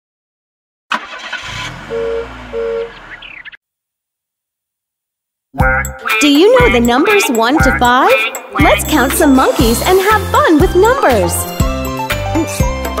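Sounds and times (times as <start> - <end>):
cartoon car engine revving: 0.9 - 3.6.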